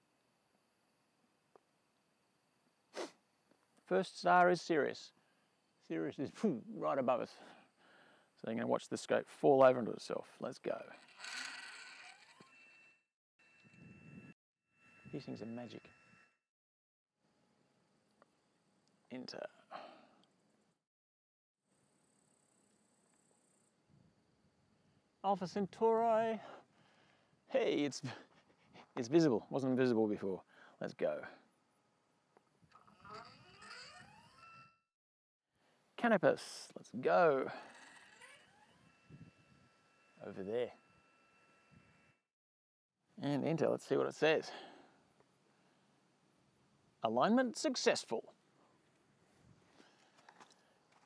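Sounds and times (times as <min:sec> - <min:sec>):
telescope mount motor whirring: 0:10.9 - 0:16.4, 0:32.6 - 0:34.8, 0:37.5 - 0:42.2.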